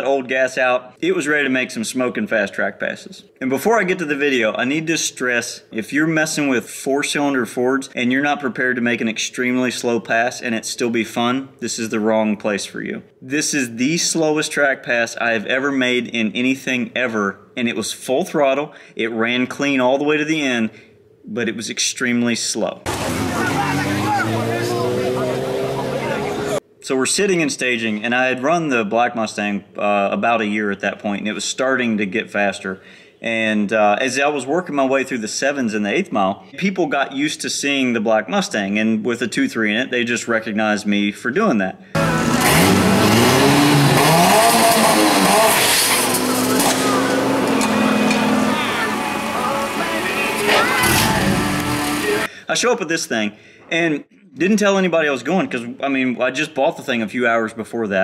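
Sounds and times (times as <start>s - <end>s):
car engine revving: 22.9s - 26.6s, 42.0s - 52.3s
crowd voices: 22.9s - 26.6s, 45.1s - 52.3s
music: 47.5s - 52.3s.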